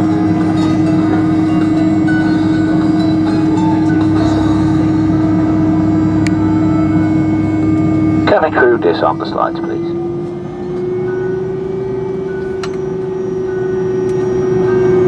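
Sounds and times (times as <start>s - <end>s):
constant low hum: 0.0s - 15.0s
jet engines idling in cabin: 0.0s - 15.0s.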